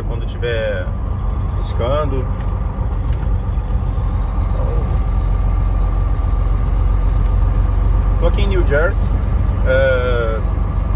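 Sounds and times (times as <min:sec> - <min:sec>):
road noise: 0:00.0 - 0:10.9
truck diesel engine drone: 0:00.0 - 0:10.9.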